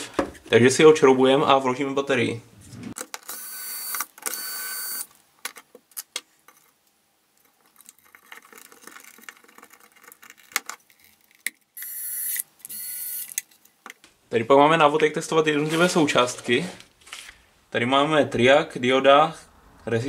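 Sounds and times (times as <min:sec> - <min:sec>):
electric screwdriver whirring: 0:03.3 - 0:05.0
faint clicks and handling rattles: 0:05.4 - 0:11.6.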